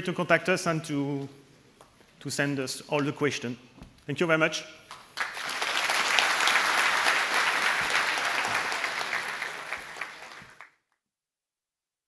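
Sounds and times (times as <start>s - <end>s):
audience applauding: 4.9s - 10.7s.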